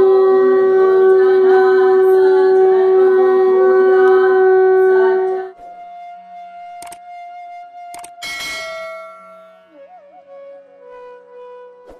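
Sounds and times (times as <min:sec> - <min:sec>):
instrumental music: 0:00.0 - 0:11.9
sharp click: 0:06.8 - 0:07.0, 0:07.9 - 0:08.5
bell ringing: 0:08.0 - 0:09.7.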